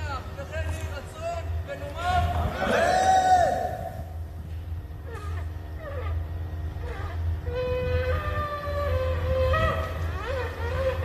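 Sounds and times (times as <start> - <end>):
steady low rumble: 0.0 - 11.0
crowd of men shouting: 2.5 - 4.0.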